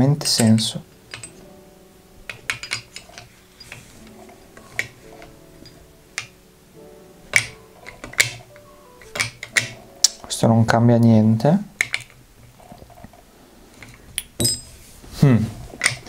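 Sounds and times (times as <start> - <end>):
faint background music: 0.0 - 16.0
metal balls clicking on wood: 0.2 - 1.5, 2.3 - 6.4, 7.3 - 10.4, 11.8 - 13.2, 15.8 - 16.0.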